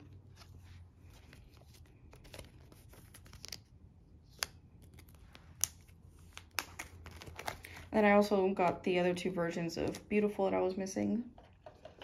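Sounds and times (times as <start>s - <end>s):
binder page turning: 0.0s - 7.9s.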